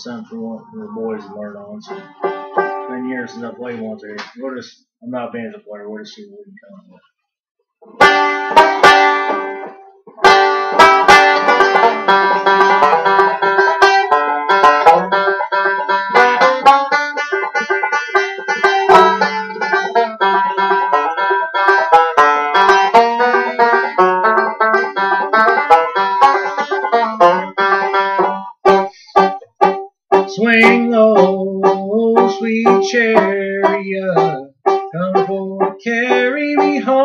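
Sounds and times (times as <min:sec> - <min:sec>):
banjo picking a tune: 0:00.0 - 0:04.6, 0:07.8 - 0:37.0.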